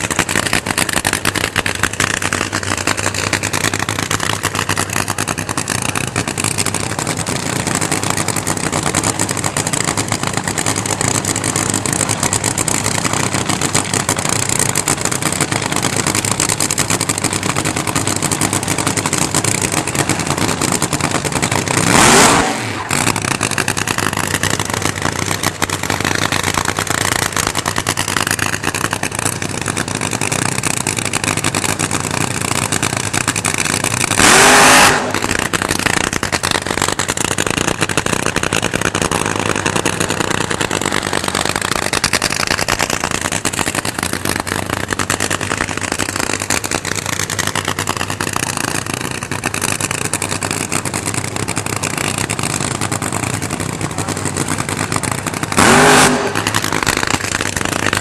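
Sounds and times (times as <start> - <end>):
drag racing engine running: 0.0 - 58.0.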